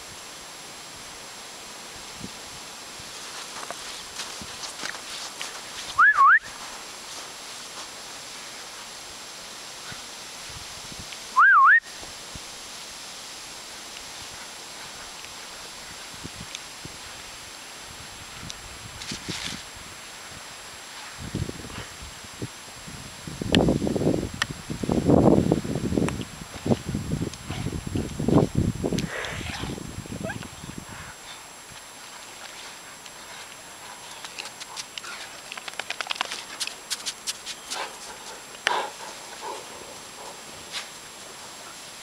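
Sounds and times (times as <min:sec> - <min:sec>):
dogs thumping through snow: 0:03.0 - 0:08.9
person whistling: 0:06.0 - 0:06.5, 0:11.4 - 0:11.9.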